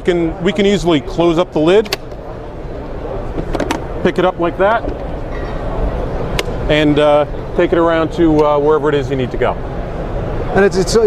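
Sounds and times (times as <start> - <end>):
crowded hall din: 0.0 - 11.0.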